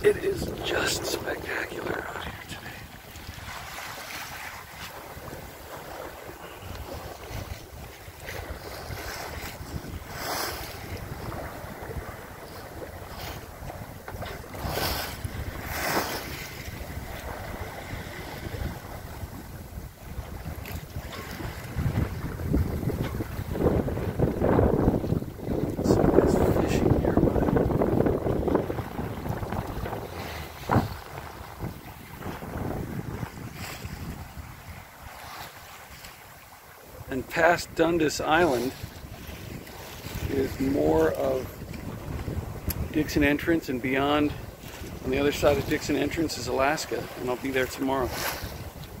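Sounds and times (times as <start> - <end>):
wind buffeting microphone: 0.0 - 37.1, 37.8 - 49.0
water rushing along boat hull: 0.0 - 49.0.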